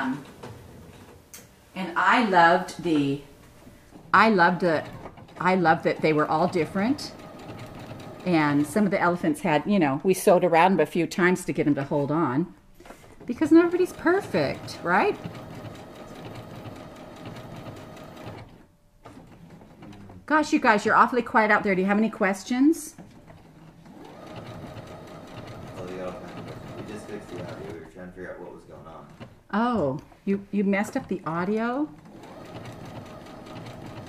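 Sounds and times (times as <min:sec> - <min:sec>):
sewing machine clattering: 0:04.2 - 0:09.2, 0:12.9 - 0:29.4, 0:30.9 - 0:34.0.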